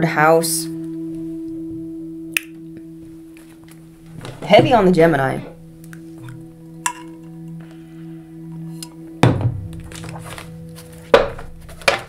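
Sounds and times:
low background music drone: 0.0s - 12.0s
cards thudding on tabletop: 11.1s - 12.0s.

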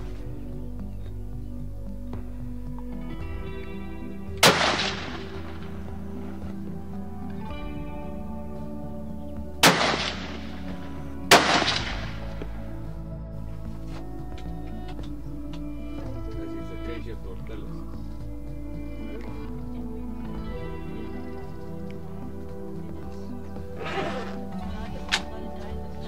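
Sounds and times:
background music: 0.0s - 26.0s
rifle shots with ringing tail: 9.6s - 10.3s, 11.3s - 12.1s.

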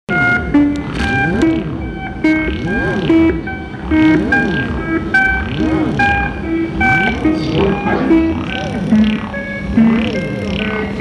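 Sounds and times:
analog synthesizer pattern: 0.1s - 11.0s.

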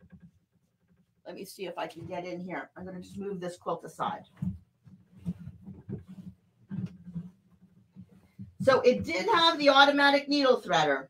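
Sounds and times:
fabric rustling and bumping: 1.9s - 9.6s.

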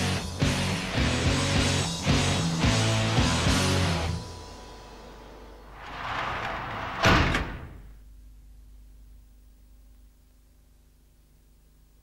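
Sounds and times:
sharp slam-like hit: 5.8s - 7.9s.

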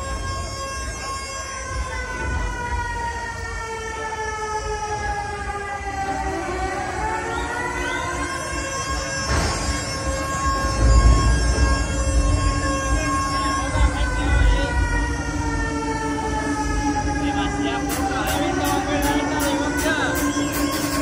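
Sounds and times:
siren-like synth tone: 0.0s - 21.0s
heavy bass: 9.2s - 21.0s
electronic dance music: 17.2s - 21.0s.

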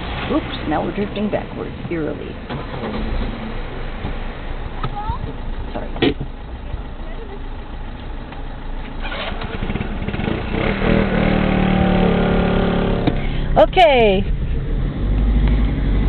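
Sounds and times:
car engine starting and idling: 0.0s - 16.0s.

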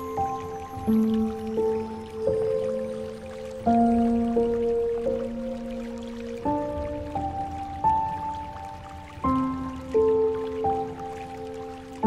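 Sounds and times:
slow solo piano music: 0.0s - 12.0s.

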